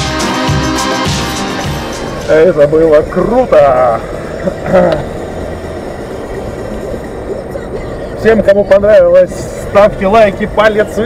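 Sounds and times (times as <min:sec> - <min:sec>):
car engine and road drone: 0:00.0 - 0:11.0.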